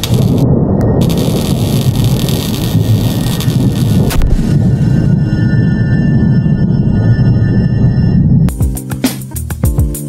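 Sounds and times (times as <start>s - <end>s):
loud rumbling static noise: 0.0s - 4.6s.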